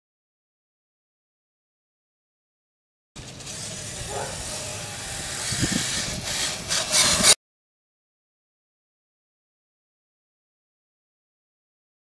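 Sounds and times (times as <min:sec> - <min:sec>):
electric rc truck motor: 0:03.2 - 0:07.4
hiss of wind or grass: 0:03.6 - 0:07.3.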